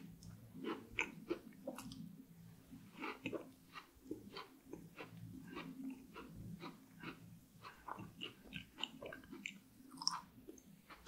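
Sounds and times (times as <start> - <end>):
close chewing: 3.0 - 11.0.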